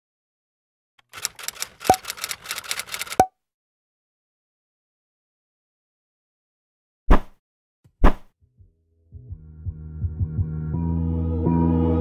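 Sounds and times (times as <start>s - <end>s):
typewriter key clacks: 1.0s - 3.3s.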